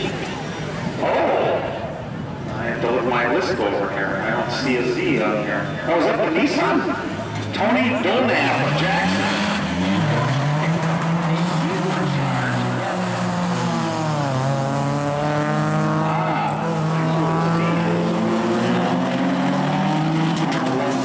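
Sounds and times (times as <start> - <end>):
car engines racing: 0.0 - 21.0.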